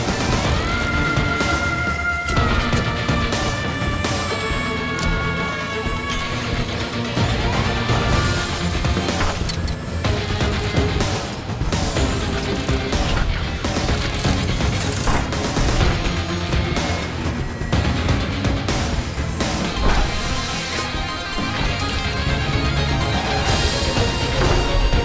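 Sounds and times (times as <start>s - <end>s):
film score music: 0.0s - 25.0s.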